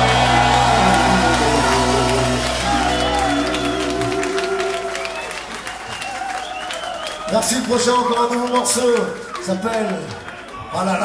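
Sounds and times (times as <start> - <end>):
ska band chord: 0.0 - 5.0
crowd cheering and applauding: 0.0 - 11.0.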